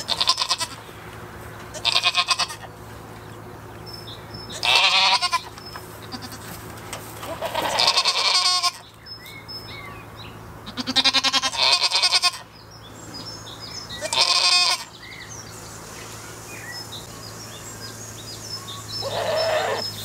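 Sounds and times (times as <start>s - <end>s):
goats bleating: 0.0s - 0.9s, 1.7s - 2.7s, 4.5s - 6.6s, 7.2s - 8.9s, 10.6s - 12.5s, 13.9s - 15.0s, 19.0s - 19.8s.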